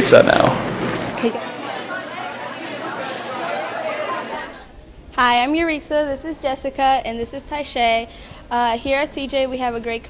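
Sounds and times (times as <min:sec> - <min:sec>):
chatter of many voices: 0:00.9 - 0:04.8.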